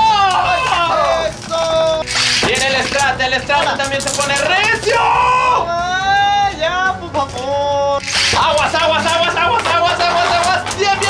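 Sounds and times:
man crying out excitedly: 0:00.0 - 0:02.0, 0:04.7 - 0:06.6.

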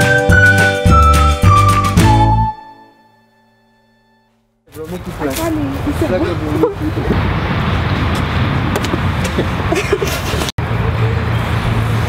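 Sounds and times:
road traffic rumble: 0:04.4 - 0:12.0.

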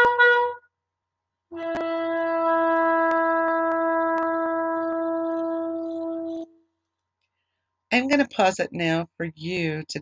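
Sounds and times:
shofar long blast: 0:00.0 - 0:00.6, 0:01.5 - 0:06.5.

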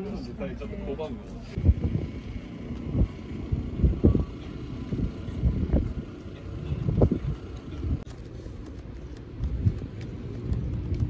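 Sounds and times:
wind buffeting microphone: 0:01.5 - 0:11.0.

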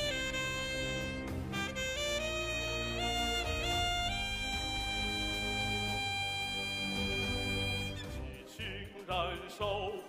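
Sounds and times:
saxophone long note: 0:00.0 - 0:08.1
live band playing: 0:00.0 - 0:08.4.

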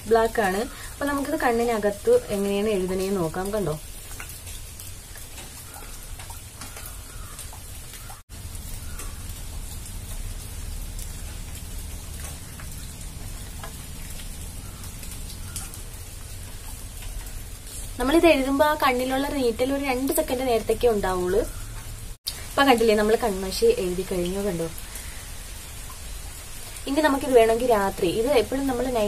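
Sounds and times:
faint crackle: 0:02.2 - 0:19.4
background hiss: 0:21.4 - 0:29.0.

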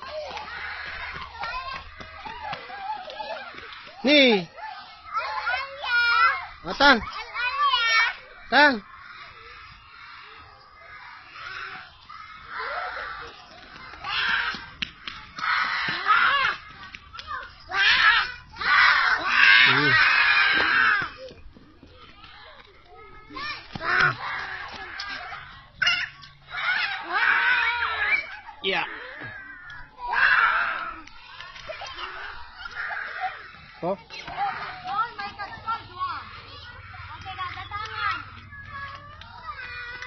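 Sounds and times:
distant children shouting: 0:00.0 - 0:40.0.

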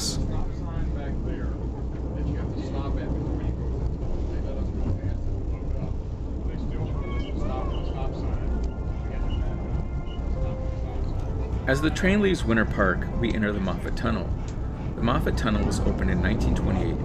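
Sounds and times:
people talking: 0:00.0 - 0:14.4, 0:15.0 - 0:17.0
moving train rumbling: 0:00.0 - 0:17.0.

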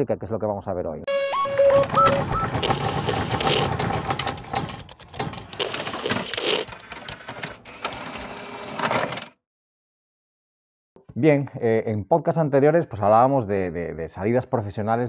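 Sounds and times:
brief beeps: 0:01.1 - 0:03.6
machine-like whirring with rapid clicks: 0:01.8 - 0:09.3.

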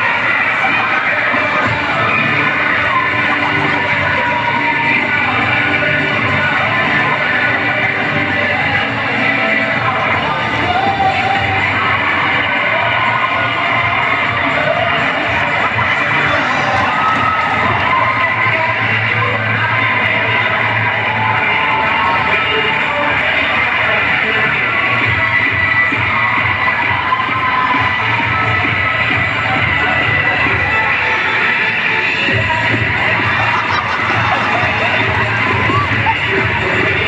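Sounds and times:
crowd cheering and shouting: 0:00.0 - 0:37.0
loud dance music: 0:00.0 - 0:37.0.

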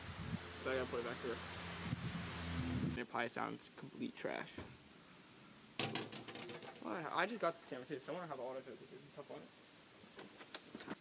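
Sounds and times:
short rattle: 0:05.8 - 0:07.0.

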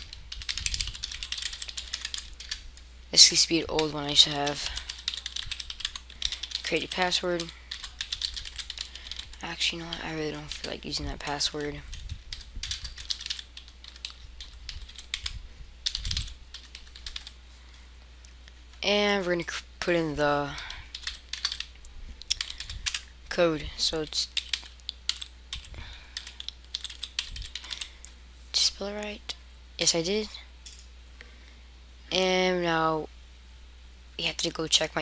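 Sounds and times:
low steady hum: 0:00.0 - 0:35.0
typing on a keyboard: 0:00.3 - 0:02.6, 0:03.8 - 0:10.0, 0:11.3 - 0:17.4, 0:20.9 - 0:21.7, 0:22.3 - 0:23.0, 0:24.3 - 0:27.9.

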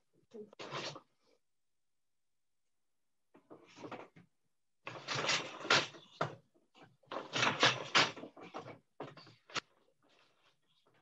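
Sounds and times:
wooden loom clattering: 0:07.1 - 0:09.6.

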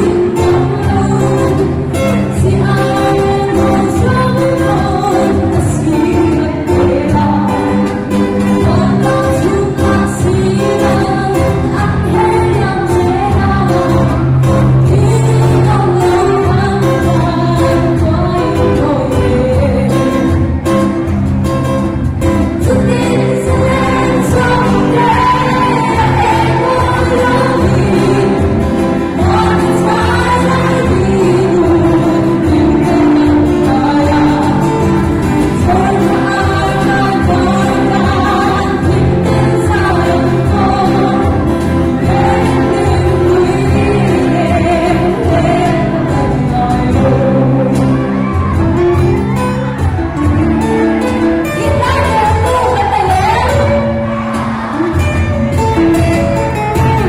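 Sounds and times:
person singing: 0:00.0 - 0:20.8, 0:22.2 - 0:57.0
acoustic guitar: 0:00.0 - 0:57.0
live band playing: 0:00.0 - 0:57.0.

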